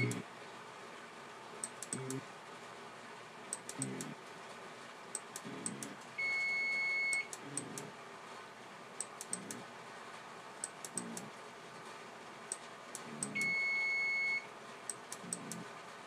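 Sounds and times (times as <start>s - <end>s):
small high ticks: 1.6s - 2.2s, 3.5s - 4.1s, 9.0s - 9.6s, 10.6s - 11.3s.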